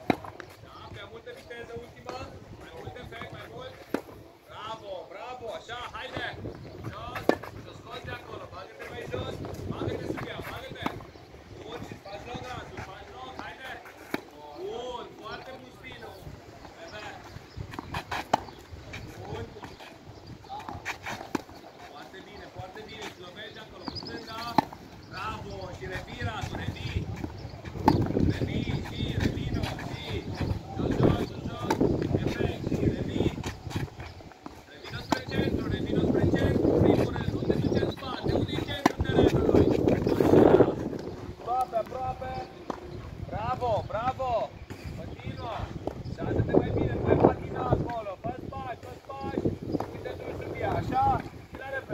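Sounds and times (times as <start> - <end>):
tennis ball bouncing on clay: 0.0 - 0.6, 6.1 - 11.1, 12.7 - 14.4, 16.7 - 43.0
voices: 0.0 - 51.9
racket hitting tennis ball: 23.9 - 24.8, 38.6 - 40.4.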